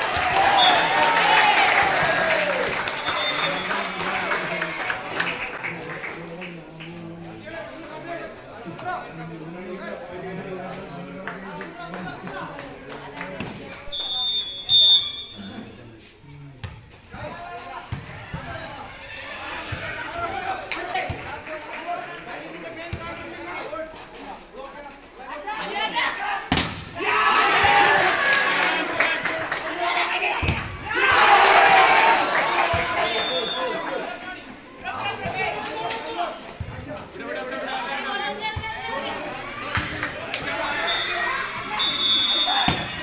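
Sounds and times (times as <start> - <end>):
voices of players and onlookers: 0.0 - 43.0
referee's whistle blast: 13.9 - 15.6, 33.0 - 33.8, 40.8 - 43.0
volleyball being hit: 26.5 - 27.0.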